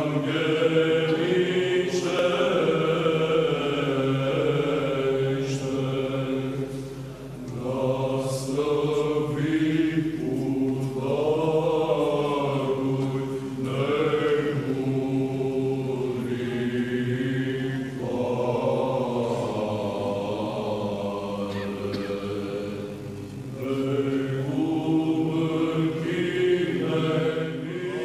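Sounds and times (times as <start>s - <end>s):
choir chanting: 0.0s - 28.0s.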